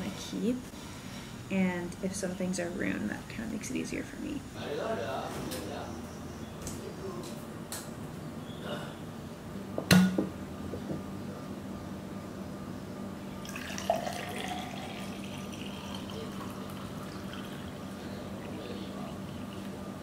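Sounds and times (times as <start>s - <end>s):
low steady hum: 0.0s - 20.0s
juice pouring into glass: 13.4s - 20.0s.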